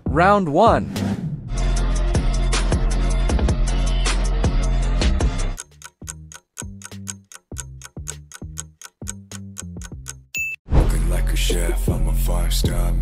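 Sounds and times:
pop music: 1.6 - 5.6, 10.9 - 13.0
clock-style ticking timer: 5.6 - 10.4
instrumental music: 5.6 - 10.4.

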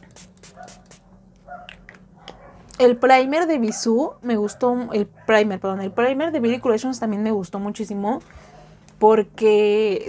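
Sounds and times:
spray bottle spritzes: 0.0 - 1.0.

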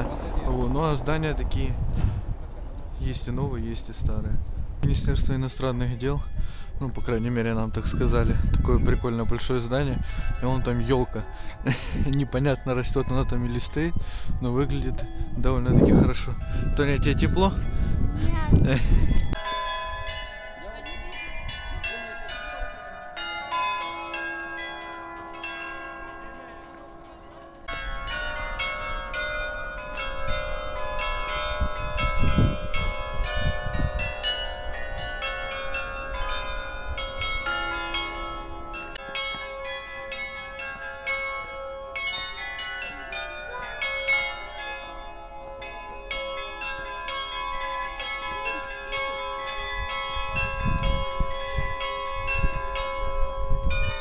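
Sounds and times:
wind rumble on microphone: 0.0 - 19.4, 30.0 - 37.4, 49.5 - 54.0
carillon bells playing a tune: 6.2 - 54.0.

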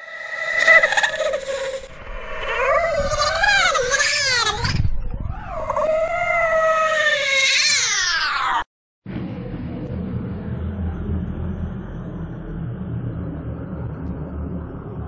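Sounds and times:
high-pitched wavering yowls: 0.0 - 8.7.

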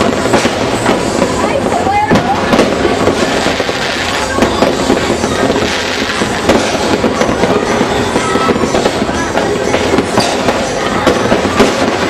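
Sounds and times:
fireworks bangs and crackles: 0.0 - 12.0.

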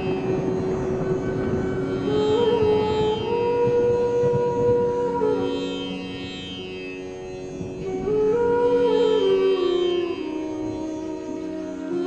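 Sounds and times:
instrumental music holding long note: 0.0 - 12.0.

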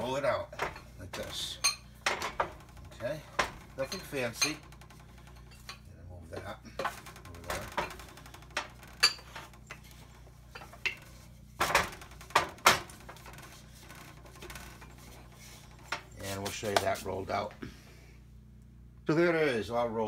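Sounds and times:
rolling pin knocking and scraping: 0.0 - 17.4.

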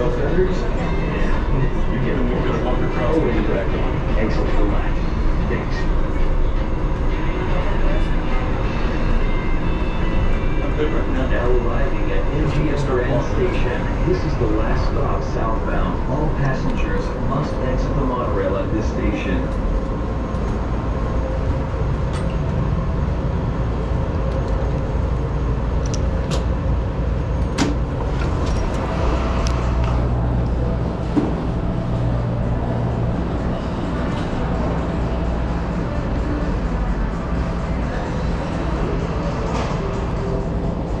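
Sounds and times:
steady low rumble: 0.0 - 41.0.

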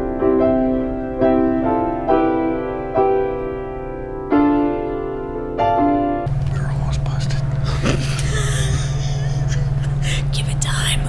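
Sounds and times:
steady low hum: 6.3 - 11.0
woman whispering: 6.4 - 7.5, 9.9 - 11.0.

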